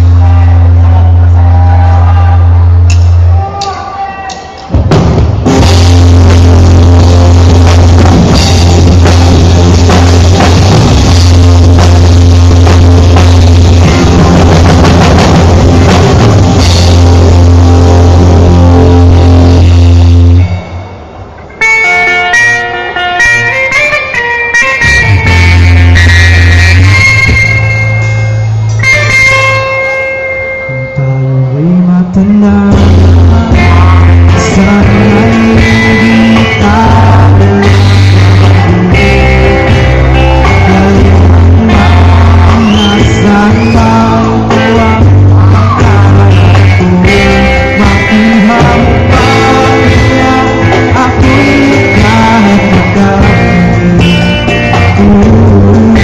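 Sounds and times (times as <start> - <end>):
rock band playing: 0.0 - 3.4, 4.4 - 56.0.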